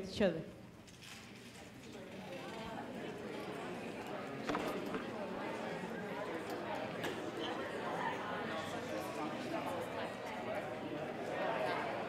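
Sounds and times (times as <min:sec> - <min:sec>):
audience talking in hall: 0:00.9 - 0:12.0.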